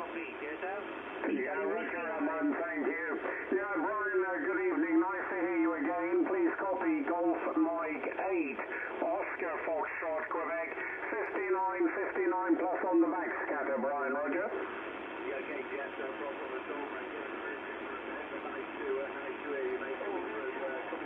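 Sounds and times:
thin radio voice transmission: 0.0s - 14.7s
radio band noise hiss: 0.0s - 21.0s.

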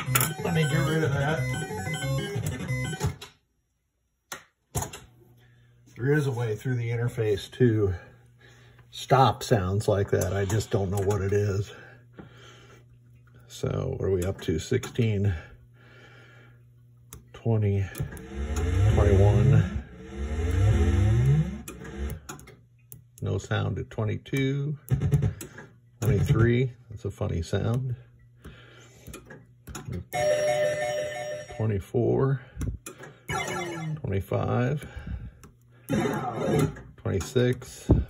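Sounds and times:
pinball background music: 0.0s - 3.2s, 33.3s - 34.0s
synthesized rising pitch sweeps: 33.3s - 34.0s.

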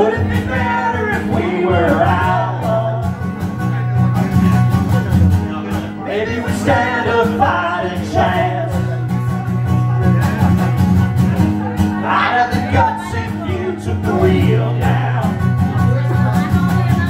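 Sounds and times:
person singing: 0.0s - 3.4s, 6.0s - 9.3s, 12.0s - 17.0s
strummed guitar: 0.0s - 17.0s.

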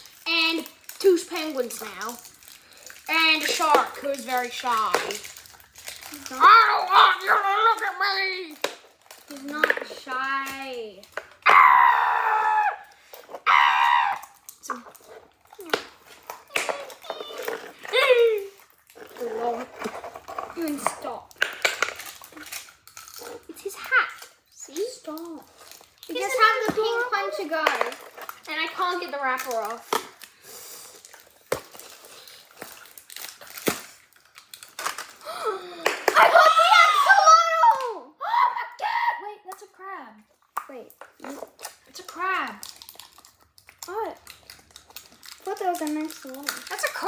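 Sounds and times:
wrapper crinkling: 0.0s - 37.9s, 40.3s - 47.0s
high-pitched vocal cries: 11.4s - 14.4s
child gasping: 35.2s - 36.0s.

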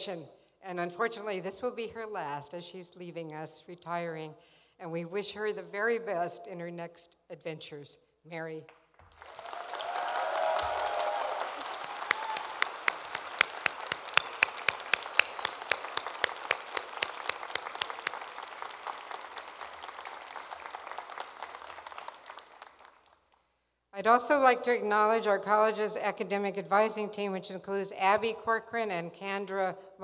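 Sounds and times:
loud sharp single claps: 8.7s - 22.9s
audience applauding: 9.0s - 23.3s
voices cheering: 9.2s - 16.3s.

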